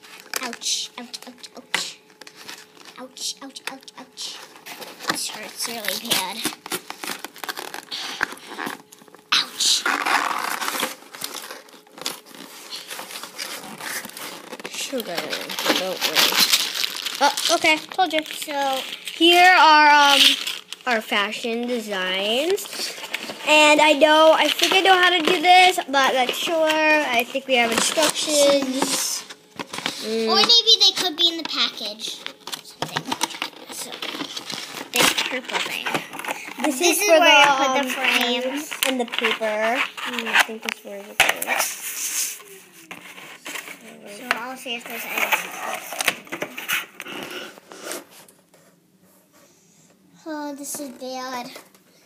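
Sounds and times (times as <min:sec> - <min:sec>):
packaging crinkling: 0:04.5 - 0:41.7.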